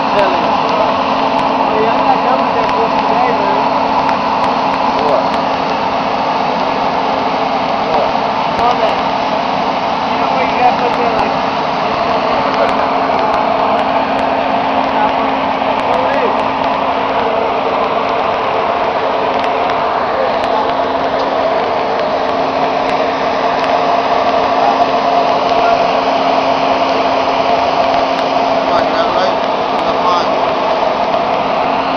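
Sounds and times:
engine droning: 0:00.0 - 0:31.9.

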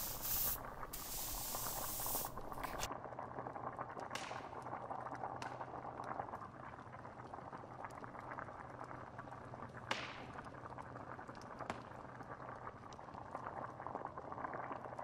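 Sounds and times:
light crackles: 0:00.0 - 0:02.9
loud hiss: 0:00.0 - 0:02.9
stew bubbling in a pot: 0:00.0 - 0:15.0.

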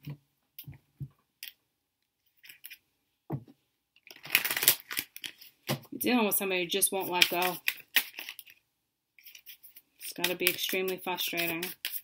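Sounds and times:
cards shuffling: 0:04.1 - 0:05.6, 0:07.0 - 0:08.6, 0:09.2 - 0:12.0
cards tapping and rustling: 0:04.1 - 0:05.8, 0:07.0 - 0:08.6, 0:09.3 - 0:12.0.

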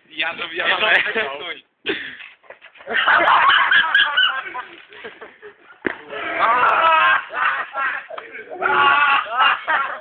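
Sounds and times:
children shrieking and yelling: 0:08.5 - 0:09.8.

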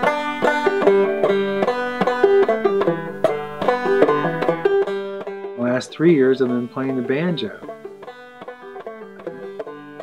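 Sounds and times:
banjo picking: 0:00.0 - 0:10.0.

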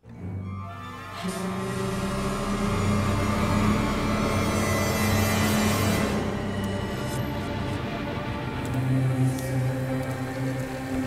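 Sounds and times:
ominous horror film score: 0:00.0 - 0:11.0.

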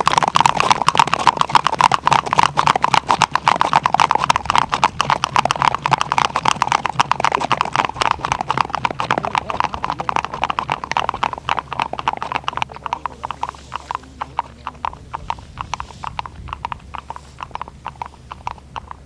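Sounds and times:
hooves clattering on ice: 0:00.0 - 0:19.0.

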